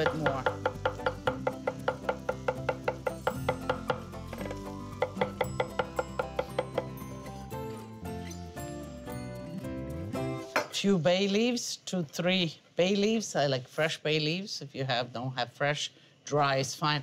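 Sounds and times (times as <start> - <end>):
knife chopping on wooden board: 0.0 - 6.9
background music: 0.0 - 11.0.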